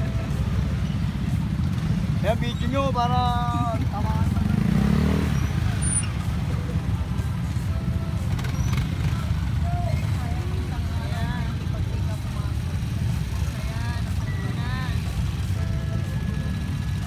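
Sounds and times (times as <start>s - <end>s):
faint voices: 0.0s - 17.0s
motorcycle engines idling: 0.0s - 17.0s.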